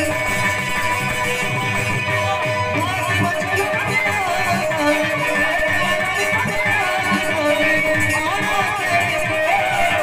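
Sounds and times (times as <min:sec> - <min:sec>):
steady drumming: 0:00.0 - 0:10.0.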